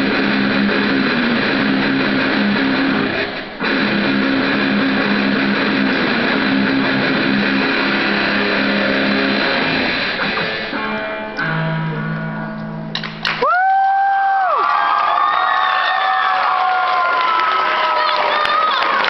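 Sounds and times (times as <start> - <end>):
electric guitars playing metal: 0.0 - 13.4.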